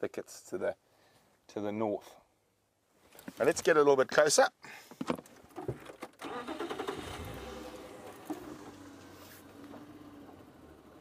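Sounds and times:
vehicle engine starting and running: 6.1s - 11.0s.

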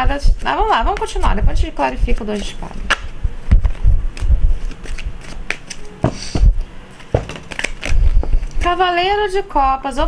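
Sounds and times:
cards being shuffled: 2.1s - 6.4s, 7.0s - 8.6s
dull low thumps: 3.1s - 5.2s, 6.1s - 7.3s.

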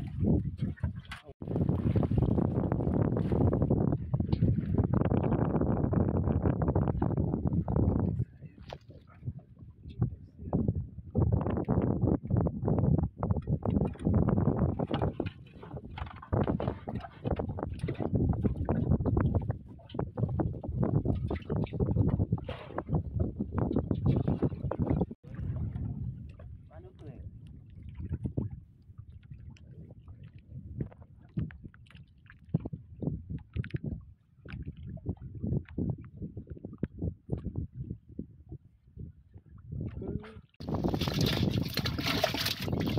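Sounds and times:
water splashing against wooden boat: 0.0s - 9.4s, 13.3s - 35.9s, 39.5s - 42.9s
people talking: 26.7s - 27.2s, 39.9s - 40.4s.

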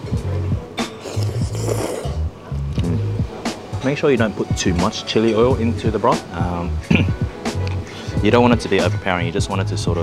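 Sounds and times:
music with pulsing deep bass: 2.2s - 3.4s.

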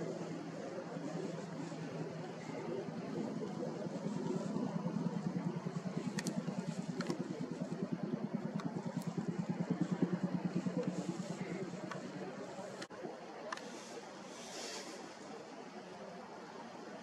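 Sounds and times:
low pulsing engine drone: 0.0s - 13.1s.

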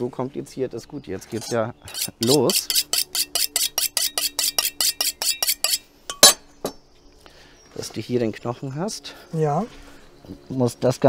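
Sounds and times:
knife scraping on sharpening steel: 1.3s - 6.4s
faint ringing of steel: 3.4s - 6.8s.

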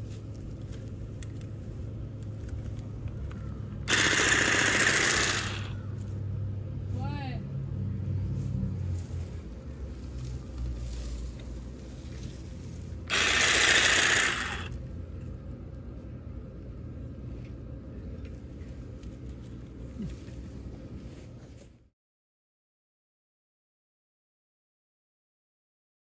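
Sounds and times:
hedge trimmer blades buzzing: 3.9s - 5.9s, 13.1s - 14.8s.

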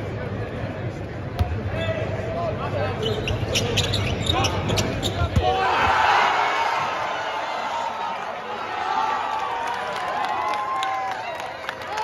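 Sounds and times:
crowd voices babble: 0.0s - 10.3s
short high squeaks: 3.0s - 5.3s.

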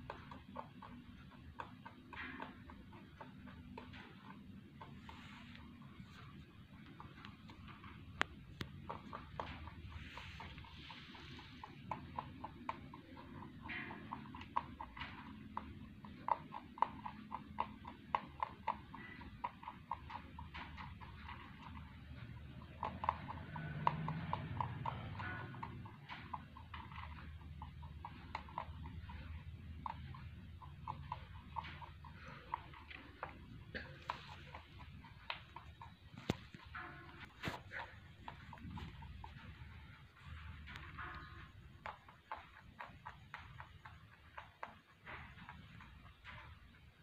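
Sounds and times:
rabbit crunching food pellets: 0.0s - 47.0s.

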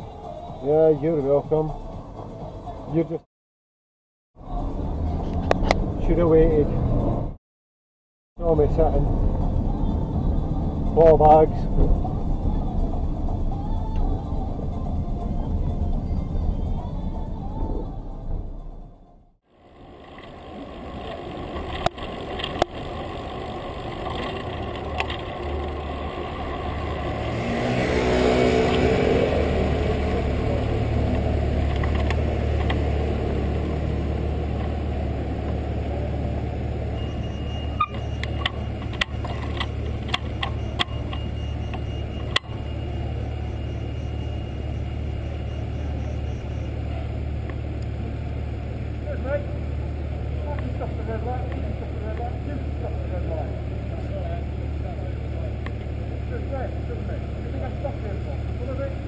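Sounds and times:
city street traffic: 0.0s - 3.3s, 4.4s - 7.4s, 8.4s - 59.0s
low engine hum: 4.4s - 7.4s, 8.4s - 59.0s
vehicle passing close: 19.6s - 54.2s
sharp clicks: 37.8s - 42.6s.

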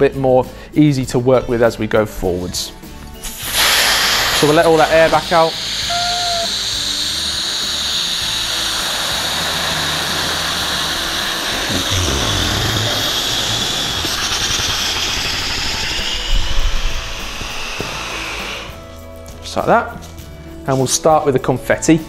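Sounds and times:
air rushing out of balloon: 3.2s - 18.9s.

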